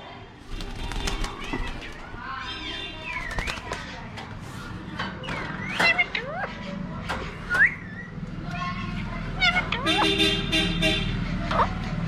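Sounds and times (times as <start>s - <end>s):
parakeet squawking: 9.4s - 10.2s.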